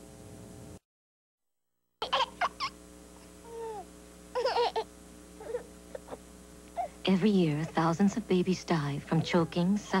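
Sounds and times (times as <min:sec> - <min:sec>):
baby cooing and babbling: 0:03.4 - 0:06.2.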